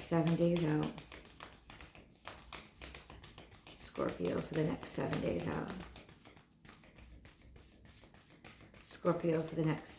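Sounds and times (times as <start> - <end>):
cards being shuffled: 0.0 - 9.9.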